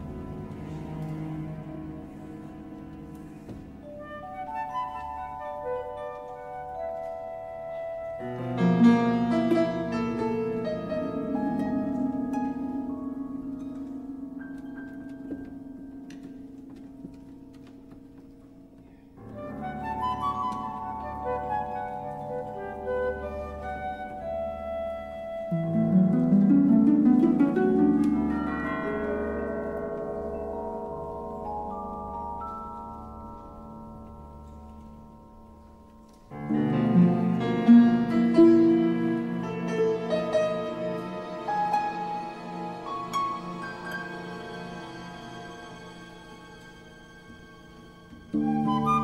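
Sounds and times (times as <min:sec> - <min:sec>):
orchestra playing softly: 0:00.0 - 0:49.0.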